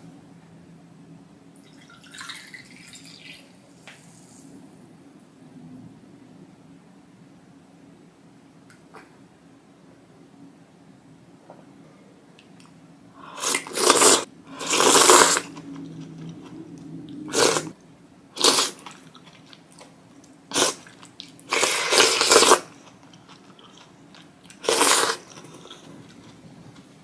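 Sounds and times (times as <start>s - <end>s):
noodle slurping: 13.2s - 17.8s, 18.4s - 19.6s, 20.5s - 23.9s, 24.5s - 26.5s
chewing: 18.4s - 27.0s.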